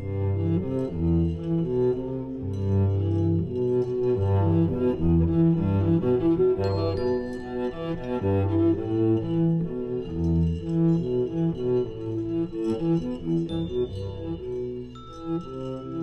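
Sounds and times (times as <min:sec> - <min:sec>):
cello playing short repeated notes: 0:00.0 - 0:16.0.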